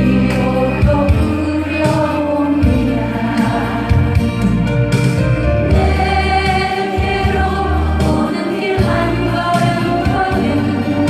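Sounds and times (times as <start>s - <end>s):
woman singing into microphone: 0.0s - 4.3s, 6.2s - 11.0s
instrumental accompaniment track: 0.0s - 11.0s.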